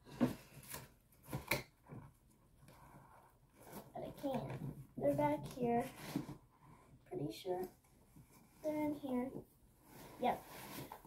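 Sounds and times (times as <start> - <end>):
rustling belongings: 0.0 - 11.0.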